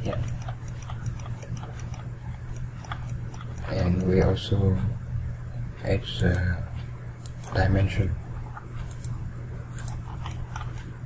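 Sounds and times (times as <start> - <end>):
mouse scroll wheel ticking: 0.0 - 4.4, 7.2 - 7.7, 8.5 - 11.0
low steady hum: 0.0 - 11.0.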